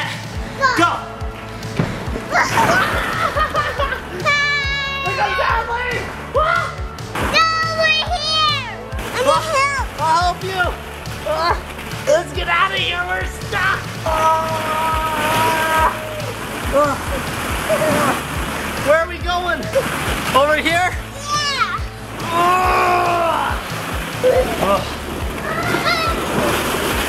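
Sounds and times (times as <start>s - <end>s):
background music: 0.0s - 27.0s
child calling and squealing: 4.2s - 5.5s, 21.1s - 23.5s, 25.4s - 26.3s.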